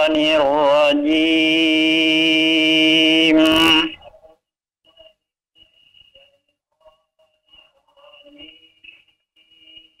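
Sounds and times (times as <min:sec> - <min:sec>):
broken voice on phone line: 0:03.2 - 0:04.4.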